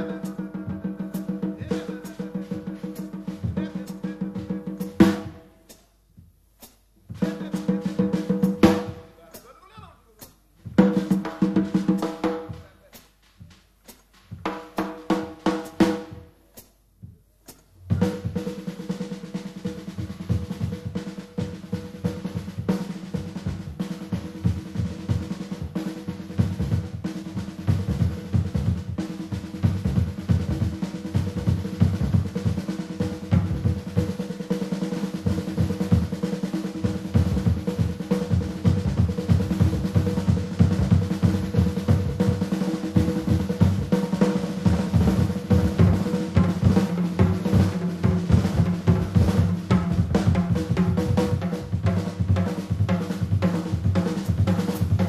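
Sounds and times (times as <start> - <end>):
drum kit rolls and fills: 0.0 - 5.5, 7.0 - 55.0.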